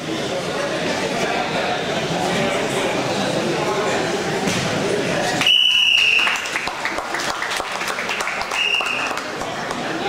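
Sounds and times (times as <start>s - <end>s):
spectators applauding: 5.4s - 10.0s.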